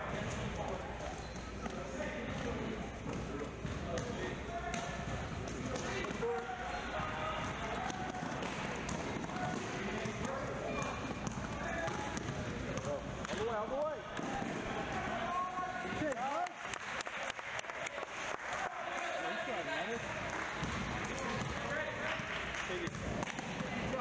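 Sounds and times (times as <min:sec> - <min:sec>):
hubbub of indistinct voices: 0:00.0 - 0:24.0.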